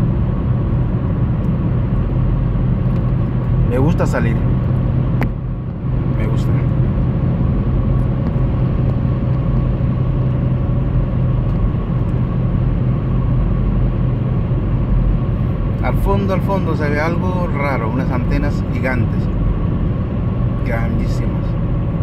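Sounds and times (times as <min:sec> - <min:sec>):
vehicle engine and road noise: 0:00.0 - 0:22.0.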